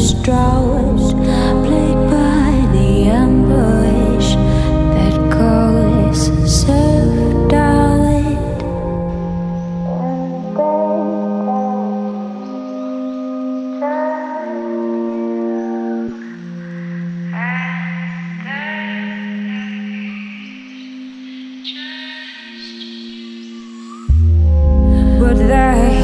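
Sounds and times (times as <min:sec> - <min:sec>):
slow sustained chord music: 0:00.0 - 0:26.0.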